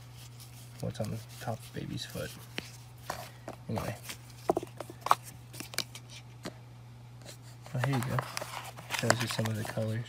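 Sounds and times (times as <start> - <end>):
cardboard and plastic packaging rustling: 0.0 - 6.5, 7.3 - 10.0
steady low hum: 0.0 - 10.0.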